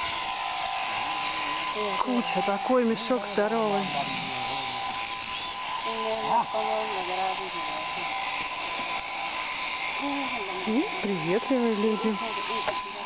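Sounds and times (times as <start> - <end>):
electric clippers humming: 0.0 - 13.0.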